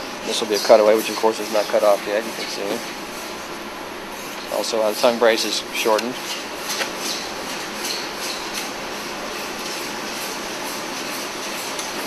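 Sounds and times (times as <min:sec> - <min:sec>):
steady workshop hiss: 0:00.0 - 0:12.0.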